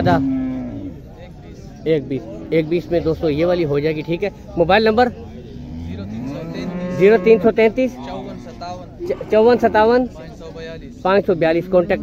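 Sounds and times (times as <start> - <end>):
cow mooing: 0.0 - 1.0, 5.6 - 10.0.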